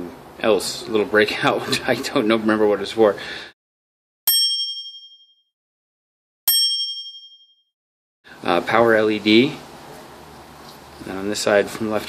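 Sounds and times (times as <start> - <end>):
bright ding chime: 4.3 - 5.4, 6.5 - 7.6.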